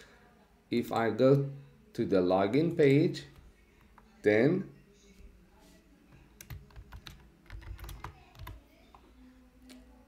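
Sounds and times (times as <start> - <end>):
computer keyboard typing: 6.4 - 8.6.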